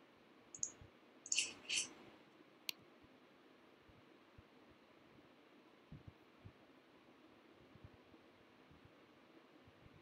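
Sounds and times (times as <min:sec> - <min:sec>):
computer mouse clicks: 0:00.6 - 0:02.0.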